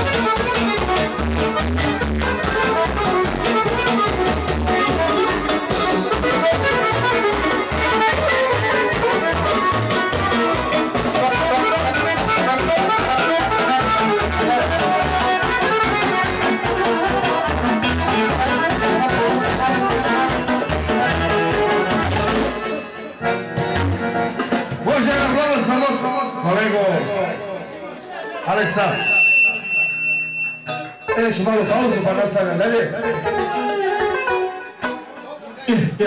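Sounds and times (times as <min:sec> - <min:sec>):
drum kit beat: 0:00.0 - 0:25.4
electric keyboard melody: 0:00.0 - 0:35.7
crowd chatter: 0:00.0 - 0:36.0
live band music: 0:00.0 - 0:36.0.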